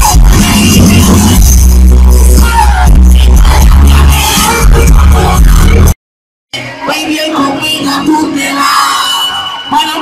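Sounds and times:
live concert music: 0:00.0 - 0:06.0, 0:06.6 - 0:10.0
person singing: 0:02.3 - 0:05.9.

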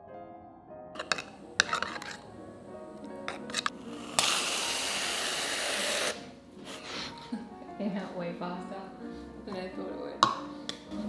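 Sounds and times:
metal spoon clinking ceramic cup: 0:01.0 - 0:02.3, 0:03.2 - 0:03.8
aerosol whipped cream spraying: 0:03.3 - 0:06.3.

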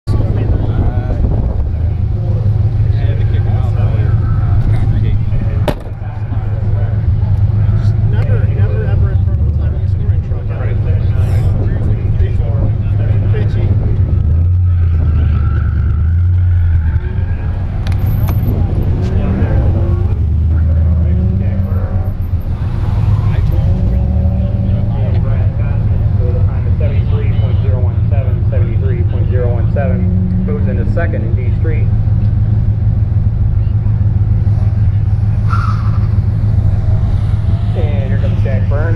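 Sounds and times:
car engine idling: 0:00.1 - 0:38.9
faint voices: 0:00.1 - 0:38.9.

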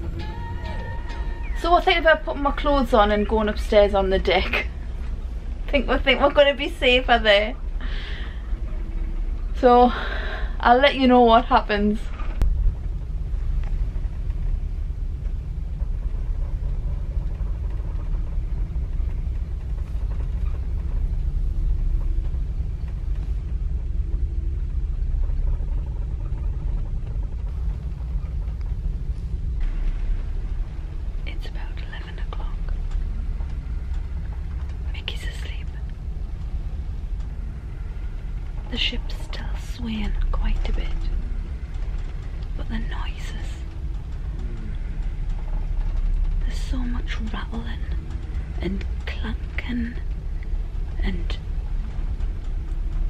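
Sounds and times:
deep rumble of ship engines: 0:00.0 - 0:53.0.

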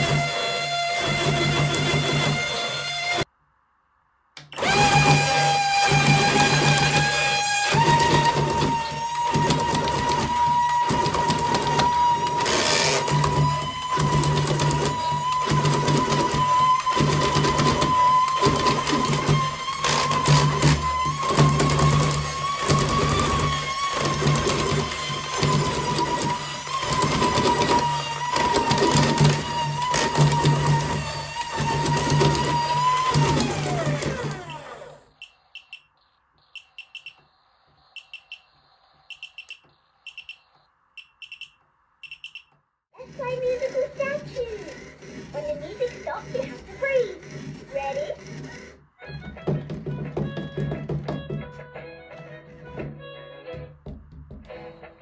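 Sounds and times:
toy motor whine: 0:04.6 - 0:35.9, 0:43.0 - 0:48.9.

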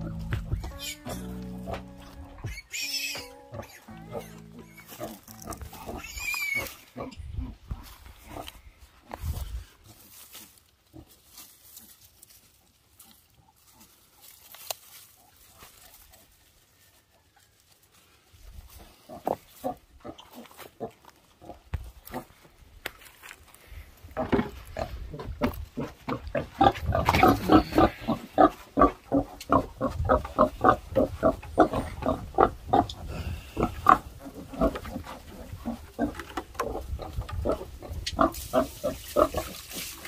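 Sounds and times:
pig grunting: 0:24.2 - 0:39.7.

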